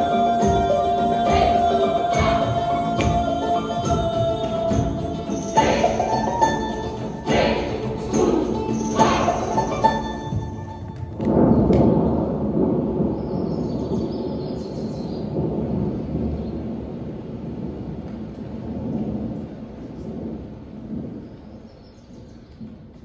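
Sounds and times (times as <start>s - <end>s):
low thunder-like rumble: 10.8s - 22.9s.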